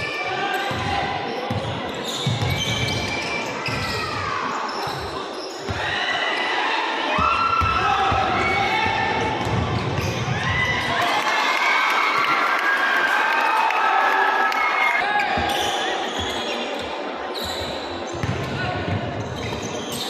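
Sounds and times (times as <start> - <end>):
sneakers squeaking on court: 0.5 - 5.9, 15.2 - 20.0
basketball bouncing: 9.4 - 10.3, 18.2 - 19.0.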